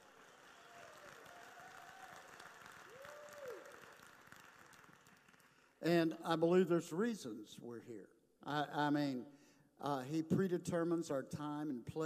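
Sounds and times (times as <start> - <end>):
faint audience applause: 0.0 - 5.8.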